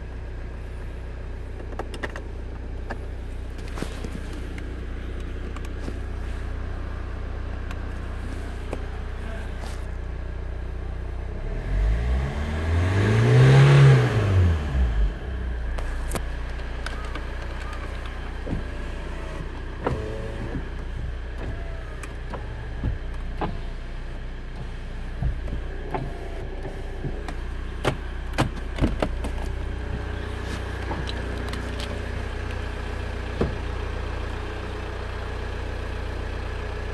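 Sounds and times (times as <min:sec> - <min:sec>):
car engine idling and revving: 0:00.0 - 0:36.9.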